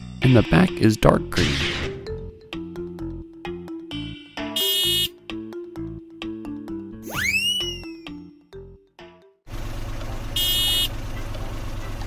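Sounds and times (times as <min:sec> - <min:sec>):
short high buzzing beep: 0:04.6 - 0:05.1, 0:10.4 - 0:10.9
toy vehicle engine rumble: 0:09.5 - 0:12.0.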